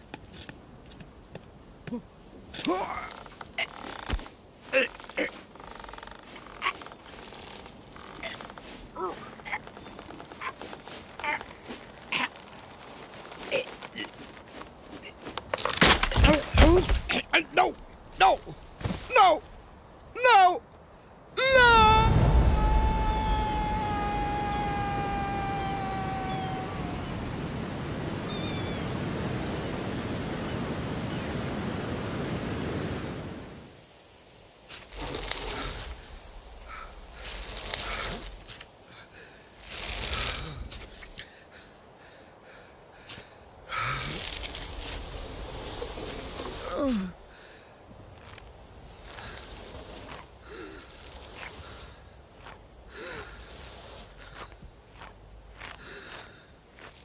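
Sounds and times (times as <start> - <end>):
wind rushing: 21.4 - 33.8
sea surf: 21.4 - 33.9
long falling held tone: 21.5 - 27.4.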